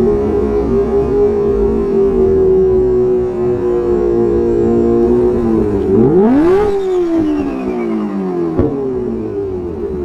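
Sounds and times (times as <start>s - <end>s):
motorcycle engine revving: 0.0s - 10.0s.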